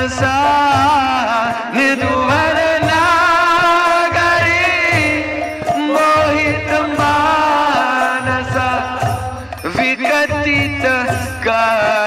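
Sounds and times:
man singing a chant: 0.0s - 12.0s.

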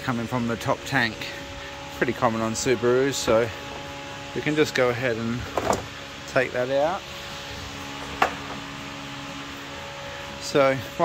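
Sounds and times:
background machine hum: 0.0s - 11.0s.

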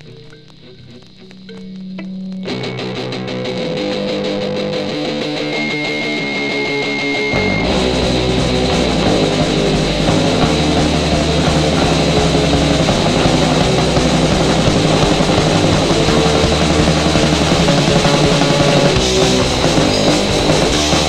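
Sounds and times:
punk band playing instrumental: 0.0s - 21.0s.

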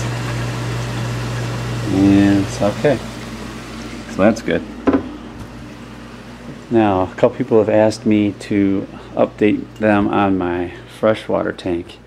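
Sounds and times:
water rushing through pipes: 0.0s - 4.6s
pump mains hum: 0.0s - 12.0s.

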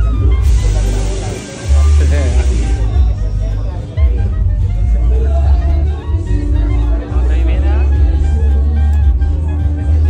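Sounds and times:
music with heavy bass: 0.0s - 10.0s
people talking: 0.0s - 10.0s.

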